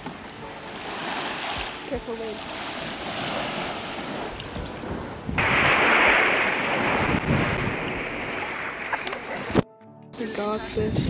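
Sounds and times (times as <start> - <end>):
sea water splashing: 0.0 - 9.6
wind noise on microphone: 2.8 - 9.6, 10.6 - 11.0.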